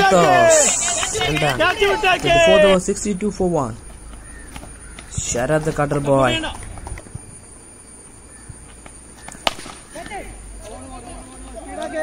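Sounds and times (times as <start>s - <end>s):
cricket bat striking ball: 8.5s - 10.2s.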